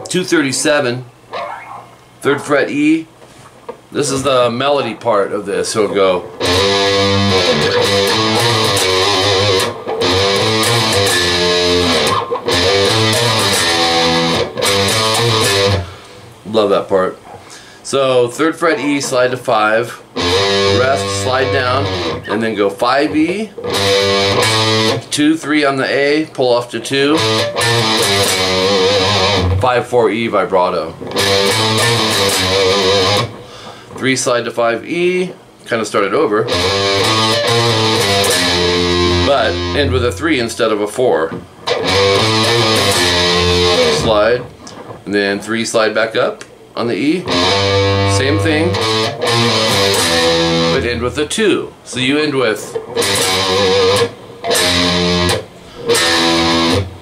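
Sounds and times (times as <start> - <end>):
electric guitar lead line: 1.3 - 2.7, 5.9 - 16.4, 18.6 - 25.1, 27.0 - 33.8, 36.4 - 45.1, 47.2 - 51.4, 52.0 - 57.0
electric guitar note with vibrato: 6.4 - 15.9, 20.2 - 22.4, 41.7 - 44.5, 47.3 - 50.8.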